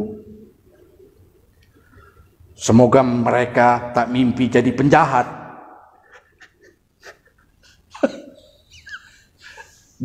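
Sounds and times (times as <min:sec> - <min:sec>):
soft breathing: 0:00.7 - 0:02.5.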